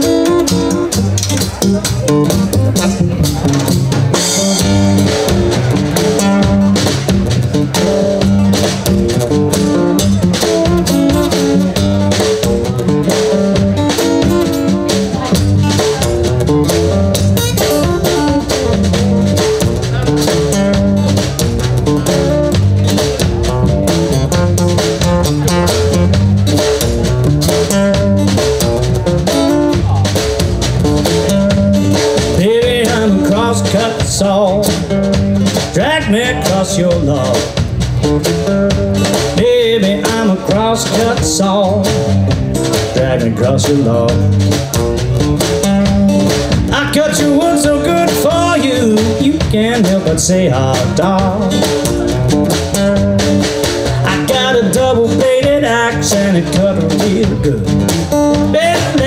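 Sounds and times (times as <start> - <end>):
acoustic guitar: 0.0 - 59.0
drum kit groove: 0.0 - 59.0
plucked double bass: 0.0 - 59.0.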